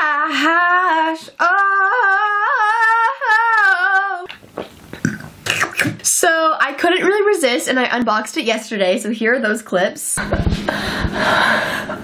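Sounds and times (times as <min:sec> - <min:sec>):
woman singing wordless tune: 0:00.0 - 0:04.3.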